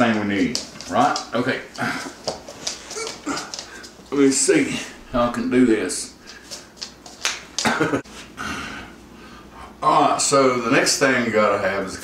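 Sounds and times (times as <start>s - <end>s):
rustling and shuffling: 0.0s - 8.4s.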